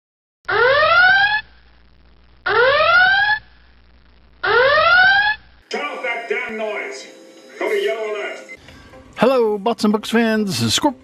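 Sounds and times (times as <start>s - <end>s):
rising alarm wails: 4.4s - 8.6s.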